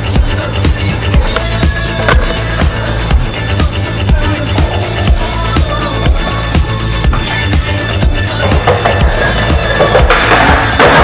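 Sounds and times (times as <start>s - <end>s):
skateboard clack: 1.2s - 2.8s, 7.9s - 11.0s.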